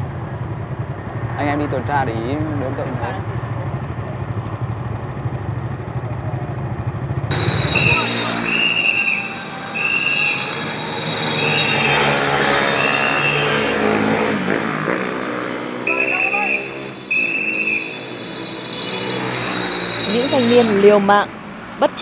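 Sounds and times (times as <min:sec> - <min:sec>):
motorbike engines revving: 0:00.1 - 0:22.0
shrill whistle blasts: 0:07.3 - 0:14.4, 0:15.8 - 0:20.9.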